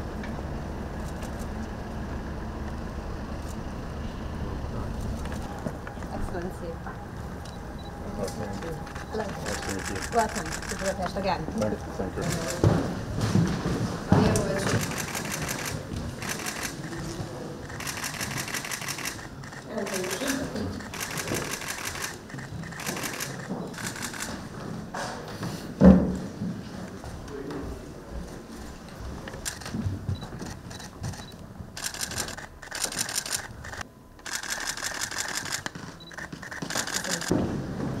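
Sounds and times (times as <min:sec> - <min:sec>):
camera shutters clicking: 0:01.0 - 0:01.5, 0:08.3 - 0:11.2, 0:14.4 - 0:24.4, 0:29.3 - 0:37.3
low murmuring voices: 0:04.2 - 0:33.8.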